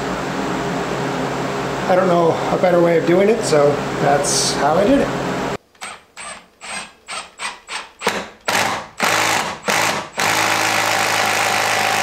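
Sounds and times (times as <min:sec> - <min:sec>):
cordless drill boring wood: 0:05.8 - 0:12.0.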